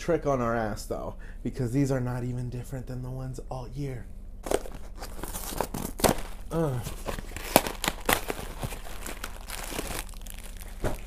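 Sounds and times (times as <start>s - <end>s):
cardboard box tearing: 4.4s - 11.0s
plastic wrapper crinkling: 4.5s - 11.0s.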